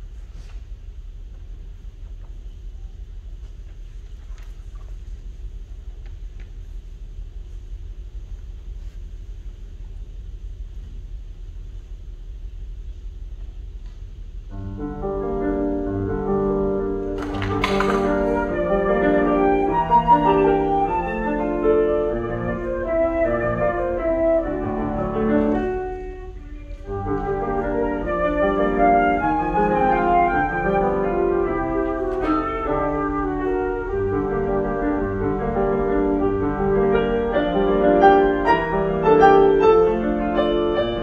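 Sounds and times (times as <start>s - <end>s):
grand piano playing: 14.5s - 41.0s
flute playing classical piece: 17.2s - 41.0s.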